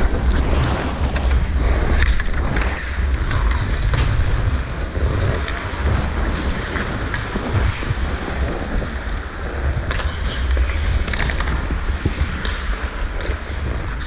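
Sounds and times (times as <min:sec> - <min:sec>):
clicks of sticks or puck: 0:00.0 - 0:04.3, 0:09.8 - 0:14.0
steady low rumble: 0:00.0 - 0:14.0
wind buffeting microphone: 0:00.0 - 0:14.0.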